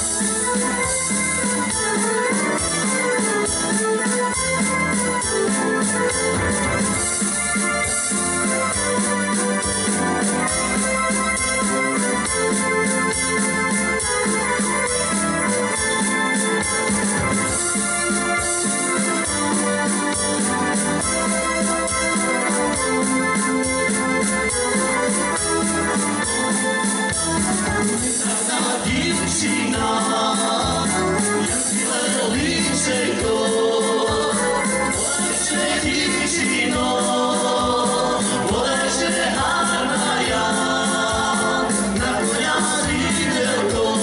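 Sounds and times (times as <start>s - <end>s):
drum kit beat: 0.0s - 44.0s
keyboard: 0.0s - 44.0s
live dance band playing: 0.0s - 44.0s.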